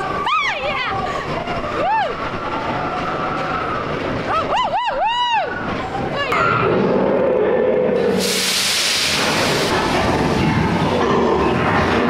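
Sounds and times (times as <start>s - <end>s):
roller coaster train rumbling: 0.0s - 12.0s
loud hiss: 8.0s - 10.3s.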